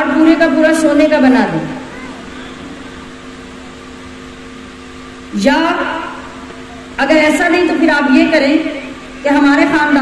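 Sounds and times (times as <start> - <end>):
machine hum and hiss: 0.0 - 10.0.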